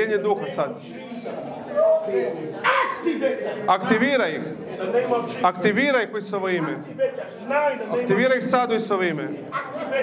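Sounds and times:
person's sharp cry: 1.8 - 3.0.

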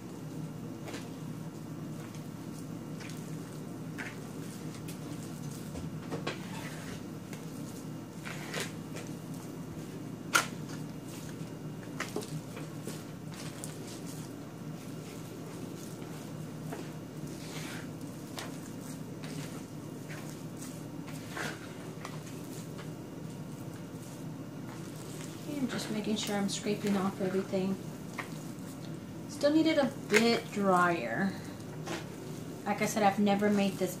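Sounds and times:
hands kneading soft dough: 0.0 - 34.0
steady low hum: 0.0 - 34.0.

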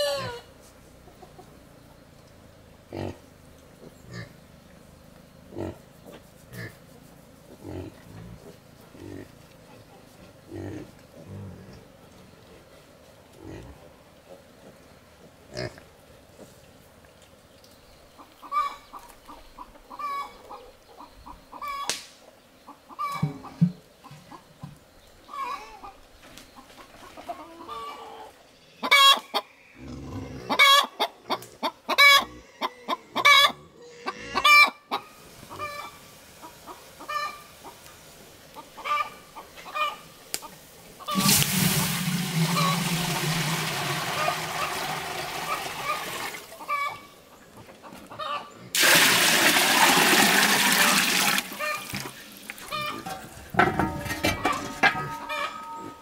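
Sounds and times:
chickens clucking: 0.0 - 4.4, 5.1 - 11.2, 18.1 - 56.0
water being poured: 41.1 - 46.6, 48.8 - 52.8.

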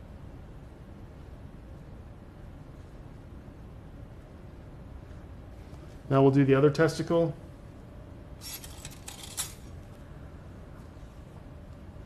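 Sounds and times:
metal instruments clinking: 8.4 - 9.7.

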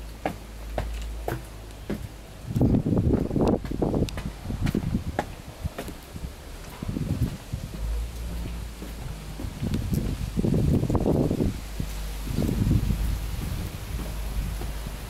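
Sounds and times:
wind buffeting microphone: 1.8 - 15.0.

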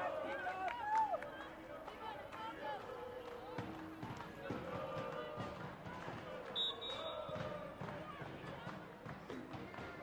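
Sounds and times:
referee's whistle: 6.6 - 7.3.

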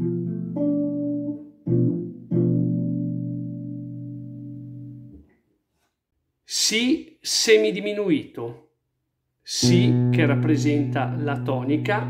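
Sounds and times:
guitar chord ringing: 0.0 - 5.1, 9.6 - 12.0.

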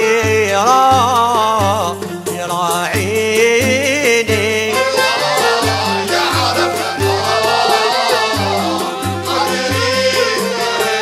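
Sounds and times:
instrumental ensemble: 0.0 - 11.0
person singing ornamented line: 3.1 - 11.0.

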